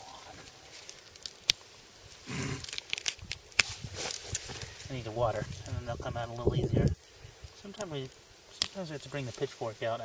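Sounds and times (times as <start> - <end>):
roots tearing out of soil: 0.0 - 9.6
foliage rustling: 0.0 - 10.0.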